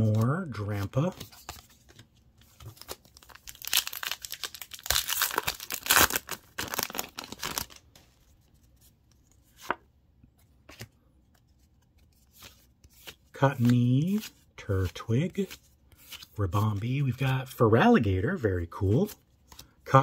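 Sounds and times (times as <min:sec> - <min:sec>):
foil wrapper tearing and crinkling: 0:02.8 - 0:07.8.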